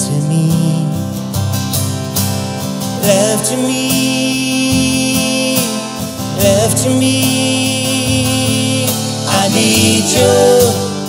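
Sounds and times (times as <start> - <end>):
live soft rock band: 0.0 - 11.0
man singing held note: 8.6 - 11.0.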